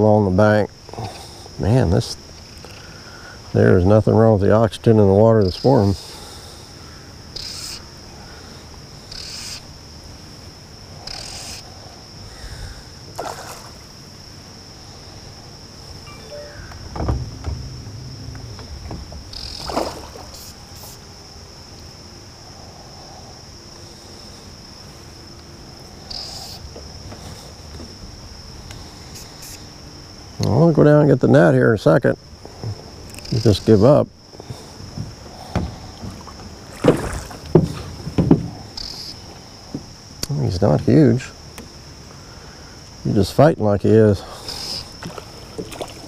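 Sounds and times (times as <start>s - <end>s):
insects chirring: 0.0s - 46.0s
low knock: 16.1s - 20.4s.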